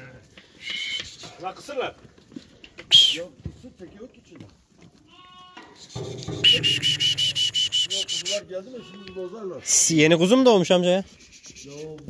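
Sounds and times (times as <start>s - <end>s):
goats and sheep bleating: 4.9s - 9.6s.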